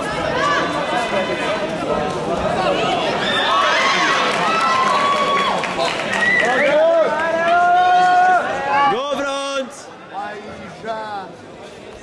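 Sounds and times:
people shouting and calling out: 0:06.4 - 0:09.9.

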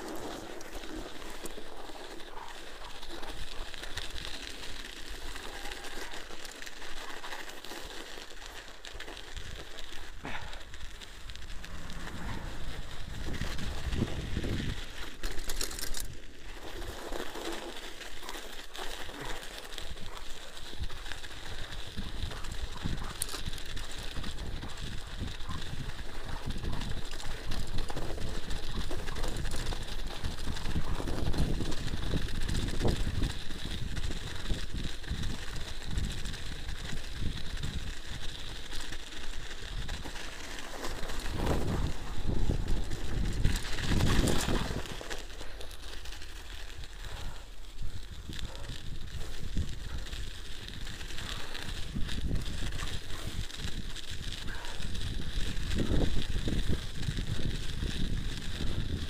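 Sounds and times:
bike rattle: 0:00.0 - 0:59.0
bike tyres crunching on snow: 0:00.0 - 0:59.0.

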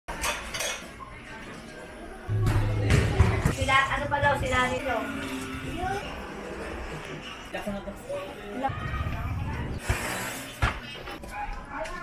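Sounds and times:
dishes clinking: 0:00.1 - 0:01.0
low alley background: 0:01.8 - 0:12.0.

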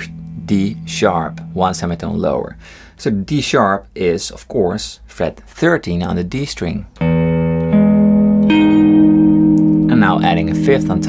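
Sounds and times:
electric guitar notes ringing: 0:00.0 - 0:03.0, 0:07.0 - 0:11.0.

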